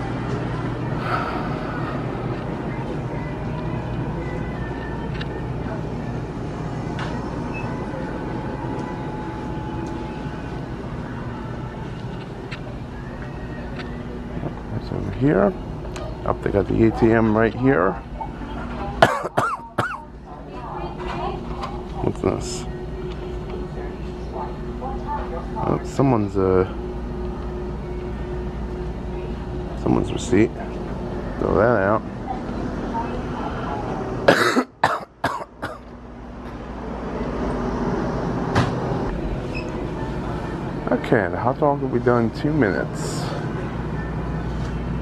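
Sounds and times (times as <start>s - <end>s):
coolers and ventilation hum: 0.0s - 45.0s
store background noise: 0.0s - 45.0s
man coughing: 19.0s - 20.0s, 34.3s - 35.8s.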